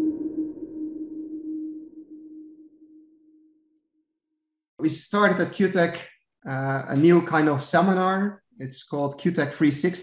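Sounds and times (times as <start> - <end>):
low synthesizer tone: 0.0 - 3.9.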